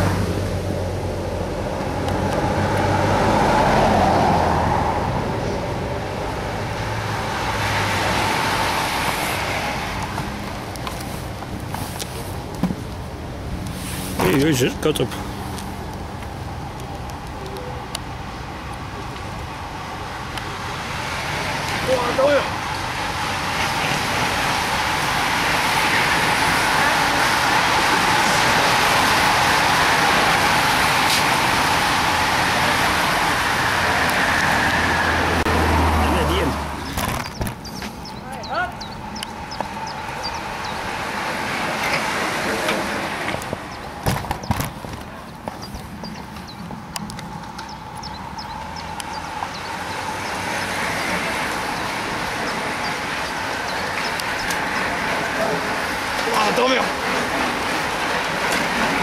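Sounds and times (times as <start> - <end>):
bicycle tyres and wind rushing: 0.0 - 59.0.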